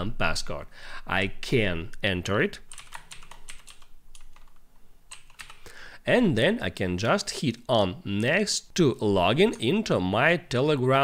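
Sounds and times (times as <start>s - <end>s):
computer keyboard typing: 2.7s - 5.7s.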